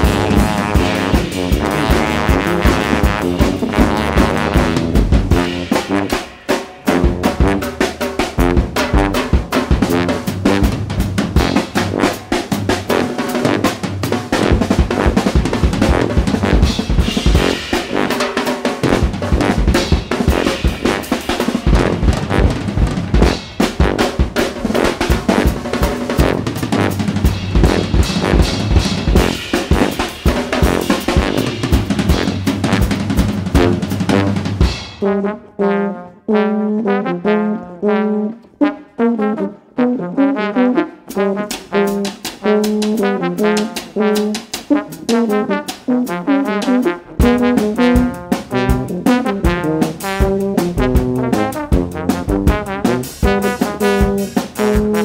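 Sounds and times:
bass line: 0.0s - 6.1s, 18.8s - 35.2s
jazz drum kit playing: 0.0s - 35.5s, 39.5s - 55.0s.

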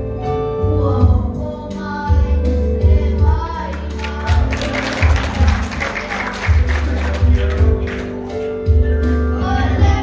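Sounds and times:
backing track with pulsing bass: 0.0s - 10.0s
children singing into microphones: 1.7s - 7.9s, 9.3s - 10.0s.

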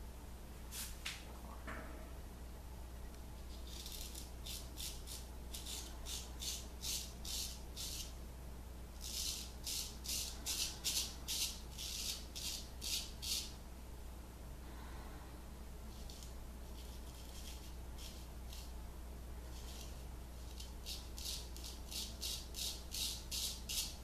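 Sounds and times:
razor scraping stubble: 3.5s - 8.2s, 9.0s - 13.5s, 16.0s - 18.7s, 19.5s - 24.0s.

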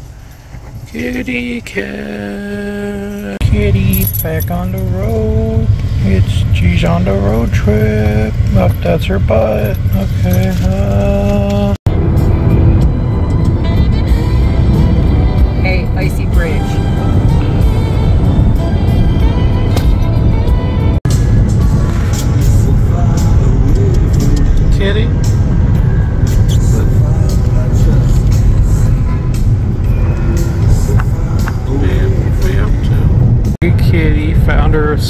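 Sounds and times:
car road rumble: 0.0s - 35.0s
music: 11.9s - 34.1s
voices: 29.9s - 35.0s.

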